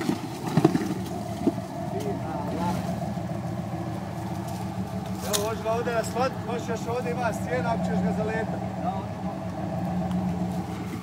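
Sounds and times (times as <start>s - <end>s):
off-road vehicle engine running: 0.0s - 11.0s.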